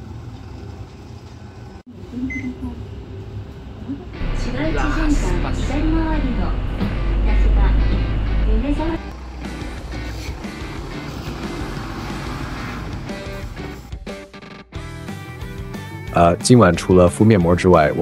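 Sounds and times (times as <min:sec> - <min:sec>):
bus engine rumbling: 0:02.1 - 0:13.9
background music: 0:04.2 - 0:18.0.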